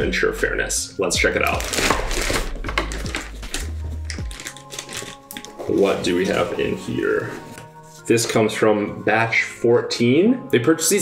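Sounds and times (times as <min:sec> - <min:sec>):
background music: 0:00.0 - 0:11.0
scissors cutting plastic bag: 0:01.5 - 0:05.8.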